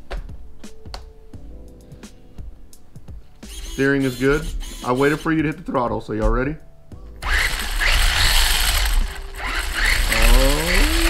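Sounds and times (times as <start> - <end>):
electric motor whine revving: 7.2 - 11.0
steady gear noise: 7.2 - 11.0.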